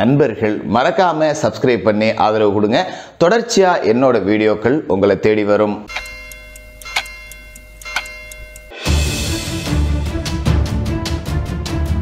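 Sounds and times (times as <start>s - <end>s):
clock-like ticks: 5.9s - 8.8s
steady held tone: 5.9s - 8.9s.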